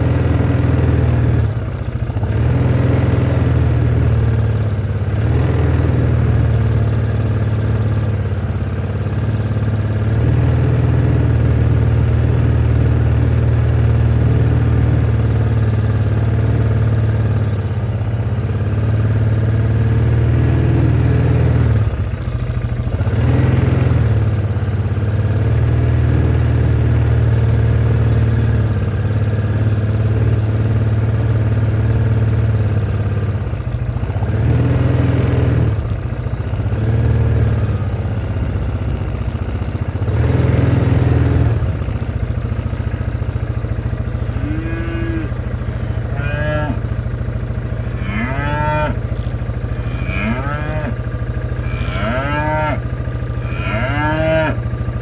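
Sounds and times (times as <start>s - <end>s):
utility vehicle engine running: 0.0s - 55.0s
cow mooing: 44.2s - 46.9s, 47.8s - 54.7s.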